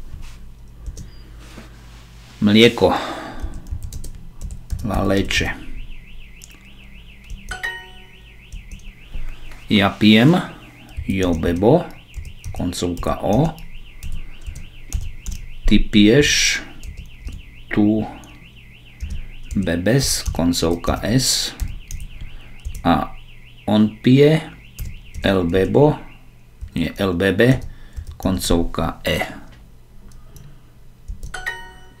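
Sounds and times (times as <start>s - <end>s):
faint high warbling tone: 5.4s - 14.1s
bright rising chime: 7.5s - 8.4s.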